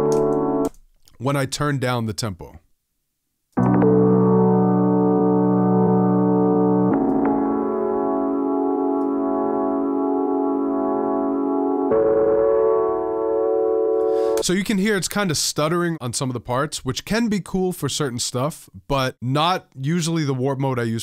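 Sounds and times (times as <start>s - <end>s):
sustained synth chords: 3.6s - 14.4s.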